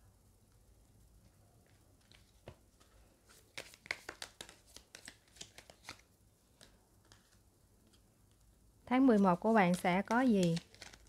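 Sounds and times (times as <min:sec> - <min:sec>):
cards being dealt: 0:02.0 - 0:08.0, 0:09.2 - 0:11.0.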